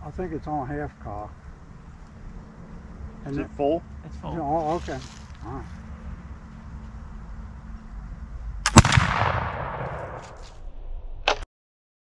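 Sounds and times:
shotgun gunshot: 0:08.6 - 0:10.5.

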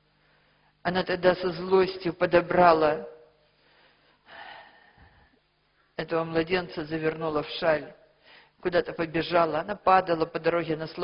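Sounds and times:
person speaking: 0:00.9 - 0:03.2, 0:06.0 - 0:08.0, 0:08.6 - 0:11.0
person breathing in: 0:03.6 - 0:05.4.

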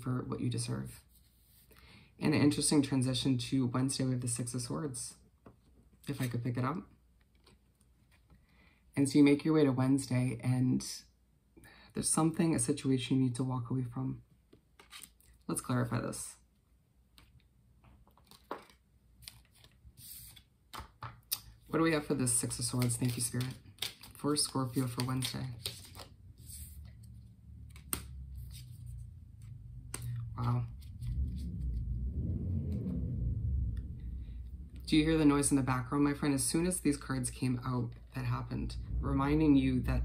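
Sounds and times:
cards tapping and rustling: 0:17.2 - 0:21.6, 0:22.4 - 0:26.1, 0:27.7 - 0:28.6
low background rumble: 0:26.1 - 0:40.0.

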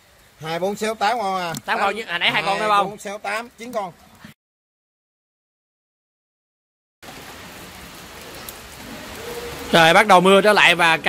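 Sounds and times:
rain falling on pond: 0:00.0 - 0:04.3, 0:07.0 - 0:11.0.

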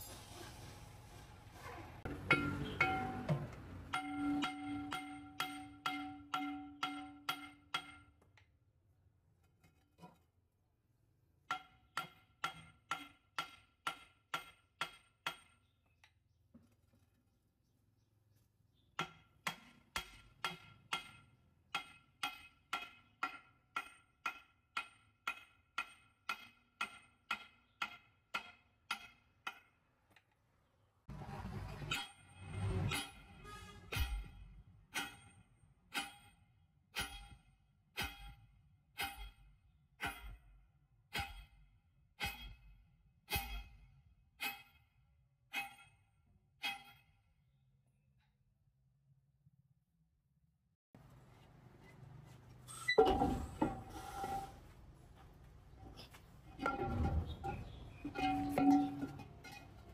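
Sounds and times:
hammer on ringing steel: 0:02.2 - 0:08.2, 0:42.2 - 0:42.7, 0:45.5 - 0:47.2
metal clatter: 0:56.4 - 0:59.9.

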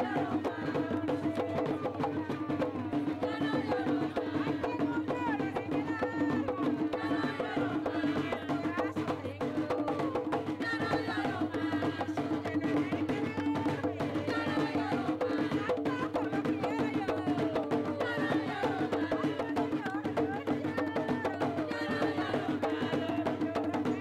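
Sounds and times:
drums beating fast: 0:00.0 - 0:24.0
voices singing: 0:00.0 - 0:24.0.

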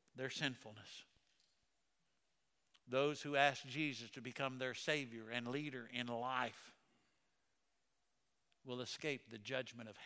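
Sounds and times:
man speaking: 0:00.2 - 0:01.2, 0:02.8 - 0:06.8, 0:08.6 - 0:10.0.

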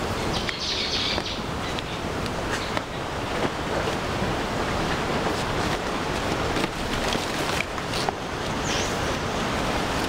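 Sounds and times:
leaves rustling and crinkling: 0:00.0 - 0:10.0.

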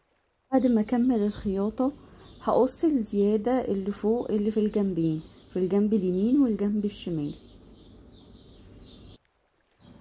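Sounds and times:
bird chirping: 0:00.6 - 0:09.2.

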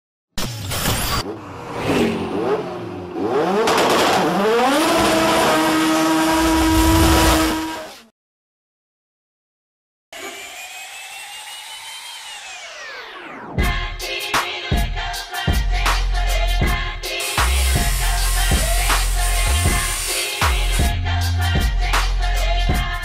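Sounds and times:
car engine revving: 0:01.2 - 0:07.9
music: 0:11.3 - 0:23.0.

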